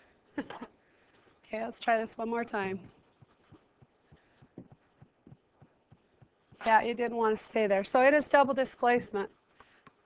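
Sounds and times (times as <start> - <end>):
stylus tapping on pen tablet: 2.8 - 6.7.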